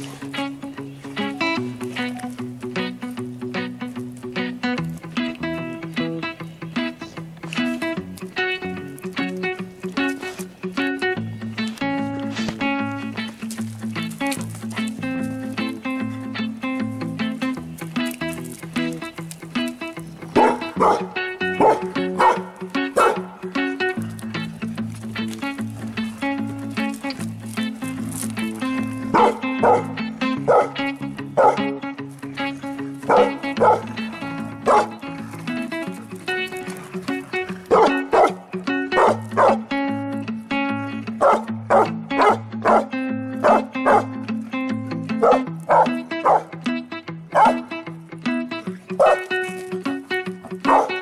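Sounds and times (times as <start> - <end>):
background music with held low notes: 0.0 - 51.0
dogs barking: 20.3 - 23.8, 28.4 - 31.8, 32.8 - 39.8, 41.1 - 44.2, 45.1 - 46.6, 47.3 - 47.8, 48.9 - 49.6, 50.4 - 51.0.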